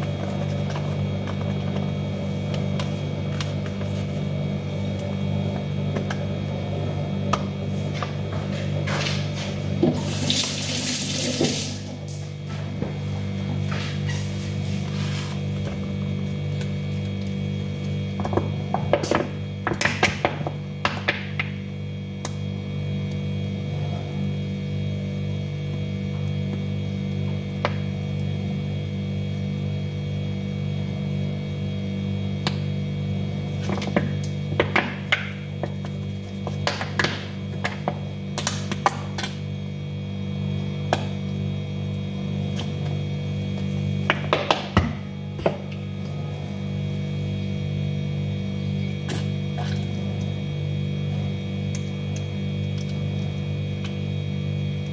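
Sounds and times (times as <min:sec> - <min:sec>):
steady low hum: 0:00.0 - 0:54.9.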